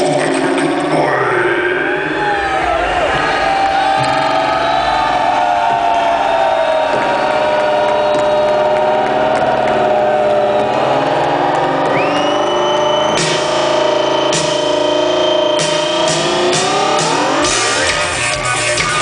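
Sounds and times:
electric guitars bending notes: 0.0s - 19.0s.

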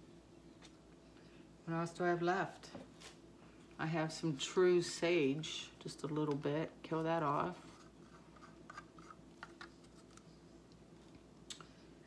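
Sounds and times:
stick scraping plastic cup: 7.6s - 10.2s.

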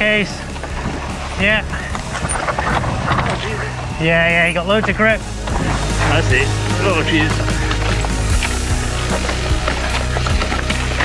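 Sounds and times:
mountain bike clattering over rock: 0.0s - 6.2s, 6.8s - 11.0s
steady rush of noise: 0.0s - 11.0s.

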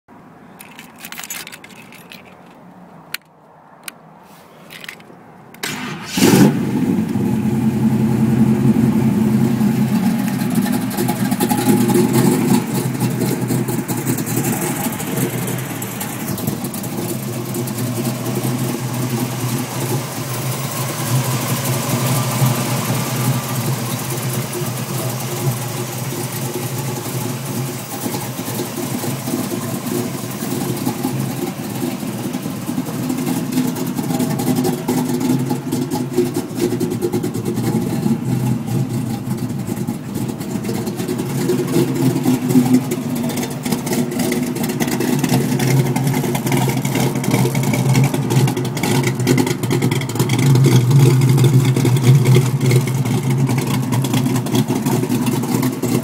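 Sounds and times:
car engine idling: 4.7s - 56.0s.

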